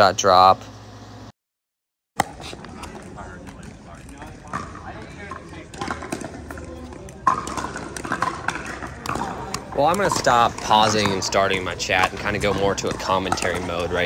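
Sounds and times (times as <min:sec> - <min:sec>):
paddles hitting ball: 0:02.2 - 0:14.0.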